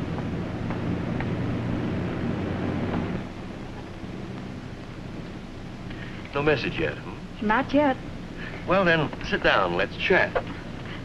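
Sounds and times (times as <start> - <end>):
airliner engine drone: 0.0 - 11.0
low hum: 0.0 - 11.0.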